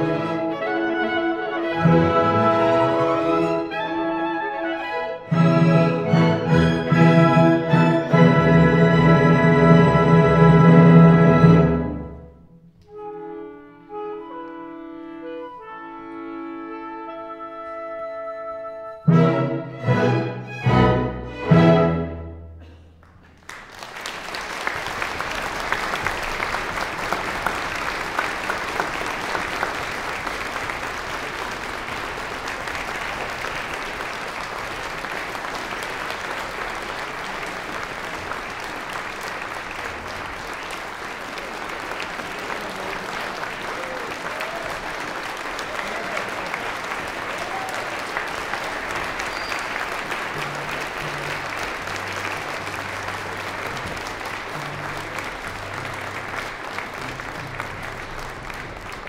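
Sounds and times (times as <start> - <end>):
audience applauding: 23.0 - 59.0.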